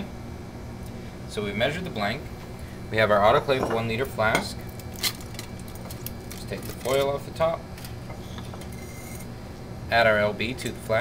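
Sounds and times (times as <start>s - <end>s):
low background hum: 0.0s - 11.0s
aluminium foil rustling: 4.7s - 8.0s.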